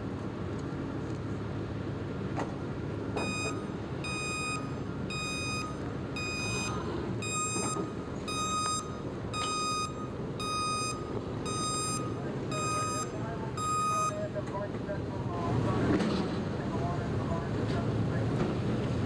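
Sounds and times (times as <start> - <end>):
low rumble of engines and traffic: 0.0 - 19.0
vehicle reversing alarm beeping: 3.1 - 15.1.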